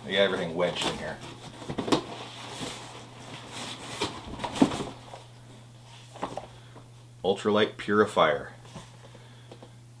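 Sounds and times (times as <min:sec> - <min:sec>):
cardboard scraping and rustling: 0:00.2 - 0:05.3.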